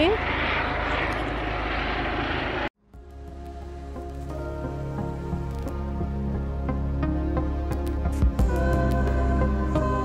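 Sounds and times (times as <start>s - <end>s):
low rumble: 0.0s - 2.7s
steady rushing noise: 0.0s - 2.7s.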